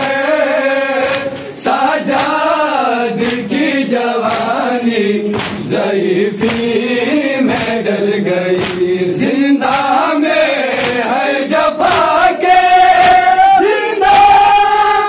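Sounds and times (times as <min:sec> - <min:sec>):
men chanting in unison: 0:00.0 - 0:15.0
hands slapping chests: 0:01.0 - 0:05.8, 0:06.4 - 0:06.8, 0:07.4 - 0:07.9, 0:08.5 - 0:11.1, 0:11.8 - 0:12.3, 0:12.9 - 0:13.4.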